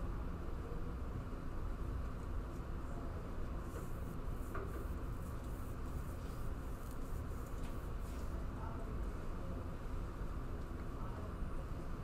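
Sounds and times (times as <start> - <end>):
steady low hum: 0.0 - 12.0
pencils scratching on paper: 3.7 - 8.3.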